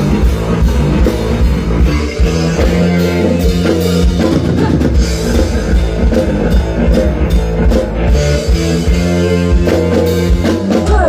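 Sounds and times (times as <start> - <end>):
heavy bass line: 0.0 - 11.0
live band playing through pa: 0.0 - 11.0.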